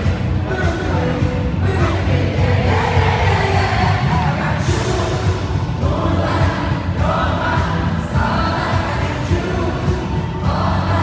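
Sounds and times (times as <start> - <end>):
heavy bass beat: 0.0 - 11.0.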